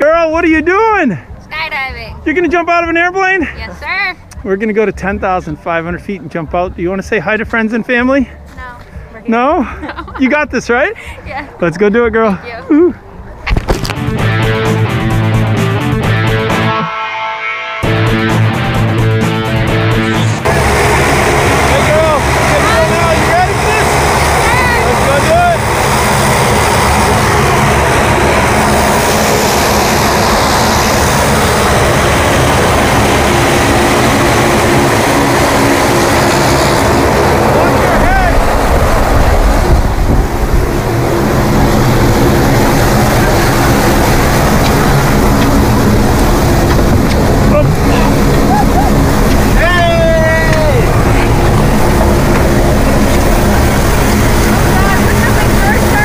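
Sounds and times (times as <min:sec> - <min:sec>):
propeller plane engine drone: 0:12.4 - 0:56.0.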